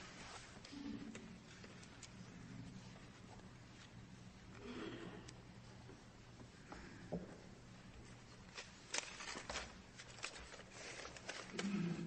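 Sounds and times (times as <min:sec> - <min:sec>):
small clicks and rustles: 0:00.0 - 0:04.6, 0:07.7 - 0:12.0.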